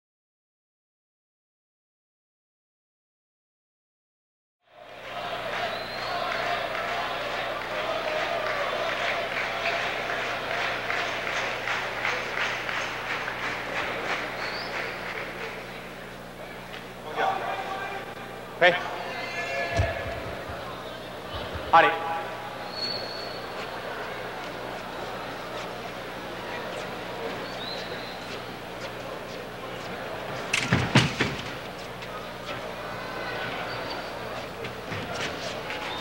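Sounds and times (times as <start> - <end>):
crowd talking: 4.7 - 36.0
crowd applauding: 4.8 - 16.1
steady low hum: 4.8 - 36.0.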